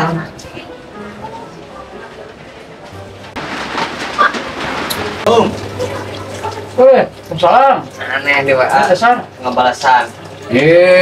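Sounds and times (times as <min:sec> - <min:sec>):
sliding door rattling on its track: 0:03.3 - 0:05.2.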